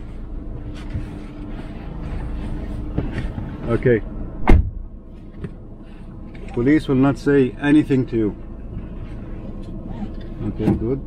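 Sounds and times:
car engine idling: 0.0s - 11.0s
person climbing into car seat: 0.5s - 3.8s.

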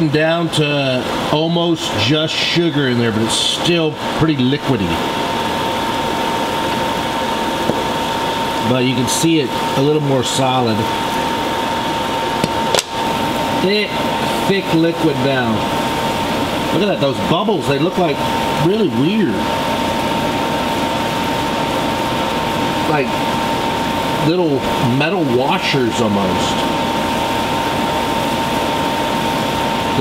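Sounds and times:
liquid boiling and bubbling: 0.1s - 30.0s.

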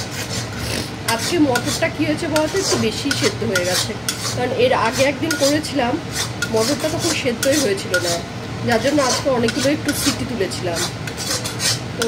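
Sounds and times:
metal spatula scraping a pan: 0.0s - 12.0s.

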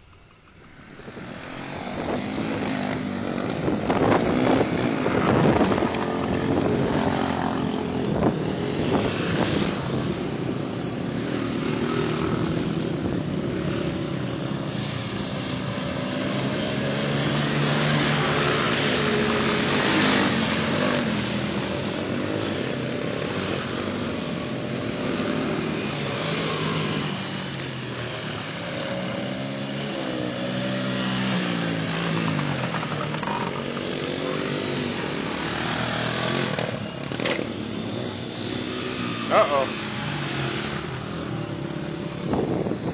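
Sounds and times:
dirt bike engines revving: 0.1s - 42.9s.

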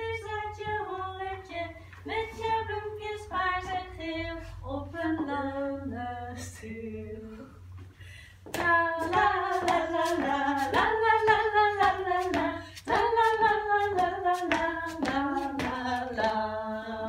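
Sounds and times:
women singing without accompaniment: 0.0s - 7.6s, 8.5s - 17.0s
rhythmic hand claps: 8.5s - 16.6s.

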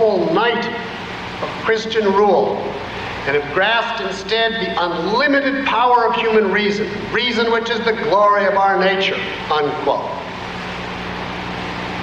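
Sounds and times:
low even hum: 0.0s - 12.0s
steady hiss: 0.0s - 12.0s.

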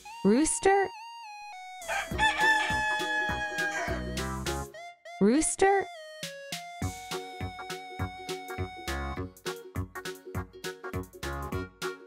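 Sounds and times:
rooster crowing: 1.8s - 4.2s.

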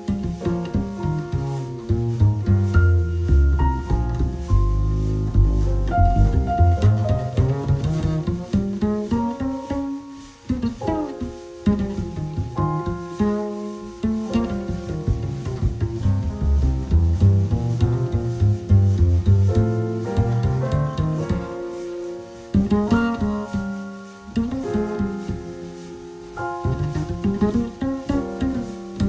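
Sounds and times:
cello and violin: 0.0s - 29.0s
plucked double bass: 0.0s - 29.0s.

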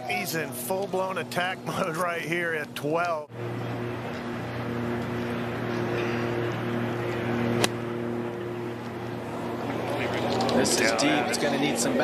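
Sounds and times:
low mechanical hum: 0.0s - 12.0s
outdoor background noise: 0.0s - 12.0s
golf club striking ball: 7.6s - 7.9s.

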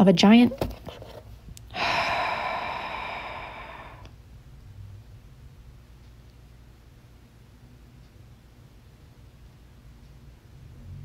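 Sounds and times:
woman sighing: 1.7s - 4.1s.

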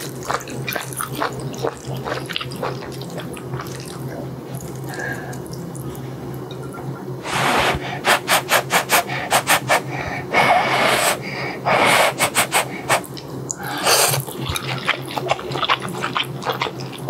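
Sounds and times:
slurping noodles: 7.2s - 16.6s.

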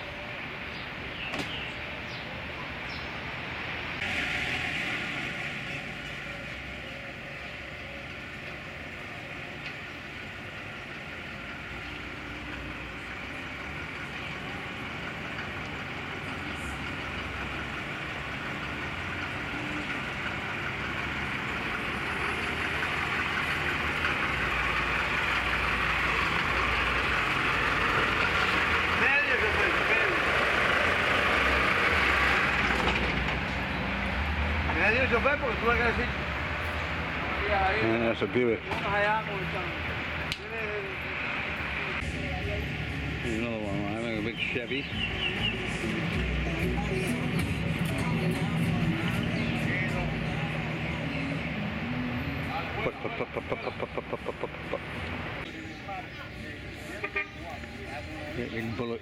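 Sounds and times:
background voices: 5.1s - 58.8s.

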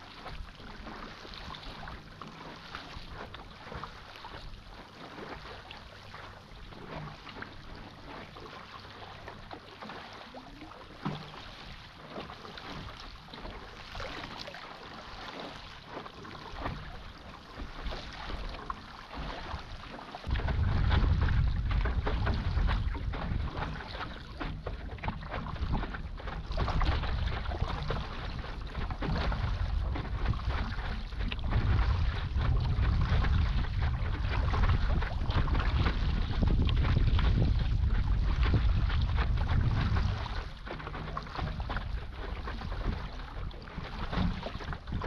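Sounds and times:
water splashing against board: 0.1s - 45.0s
wind buffeting microphone: 19.3s - 45.0s.

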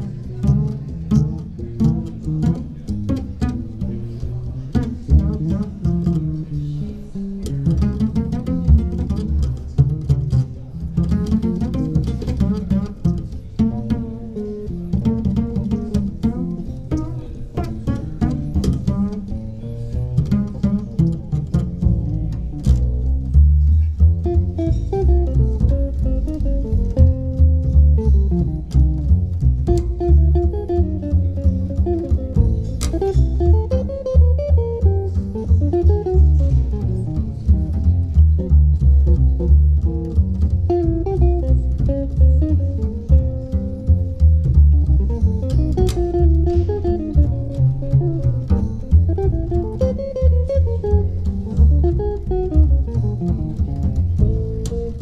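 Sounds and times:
guitar playing blues: 0.0s - 55.0s
plucked double bass: 0.0s - 55.0s.

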